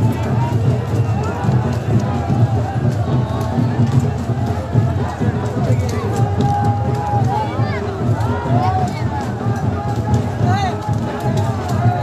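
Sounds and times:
crowd of men's voices: 0:00.0 - 0:12.0.

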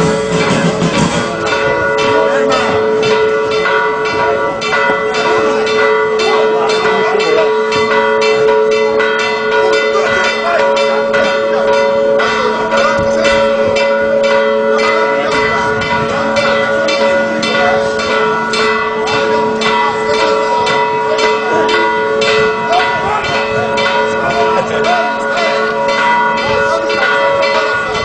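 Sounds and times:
church bells pealing: 0:00.0 - 0:28.0.

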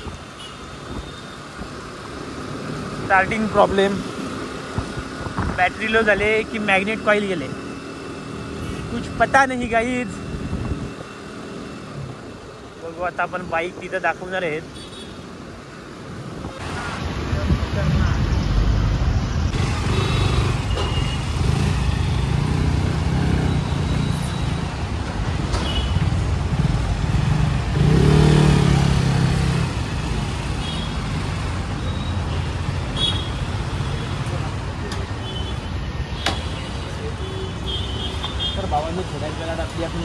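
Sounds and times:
city street traffic: 0:00.0 - 0:40.0.

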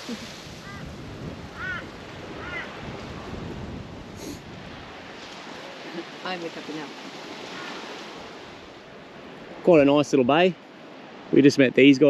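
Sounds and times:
wind buffeting microphone: 0:00.0 - 0:11.4
waves washing on shore: 0:00.0 - 0:12.0.

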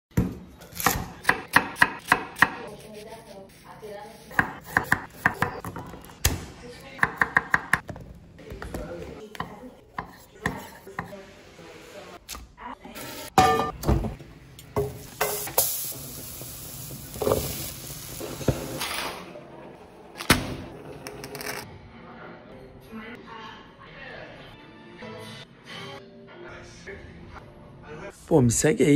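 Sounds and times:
knife chopping on wooden board: 0:00.2 - 0:02.7
food sizzling hiss: 0:14.8 - 0:18.8.

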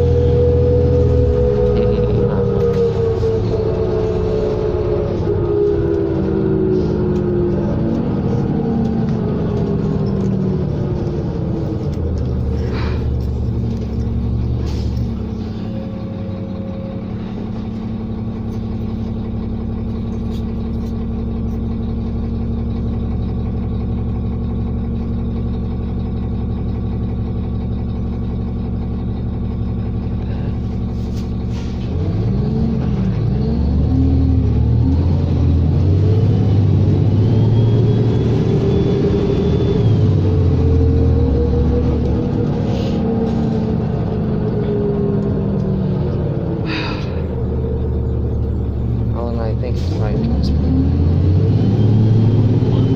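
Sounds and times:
bus diesel engine: 0:00.0 - 0:52.9
engine whine: 0:00.0 - 0:52.9.

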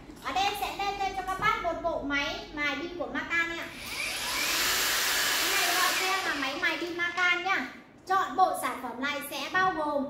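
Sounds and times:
angle grinder whirring: 0:03.7 - 0:06.9.

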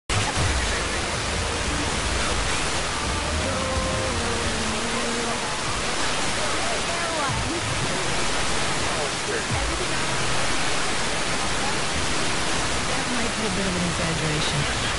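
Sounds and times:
radio static hiss: 0:00.1 - 0:14.9.

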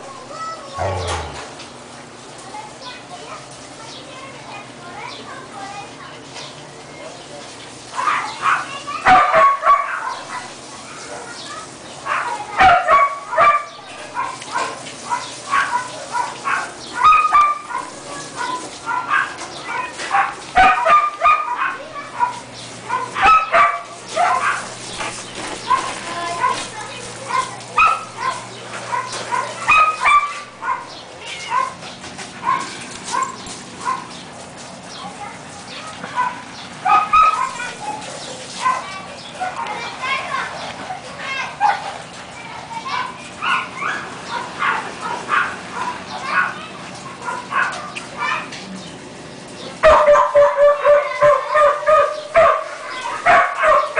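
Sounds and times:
puppies yipping and whimpering: 0:00.7 - 0:01.5, 0:36.1 - 0:40.3, 0:42.9 - 0:48.6.

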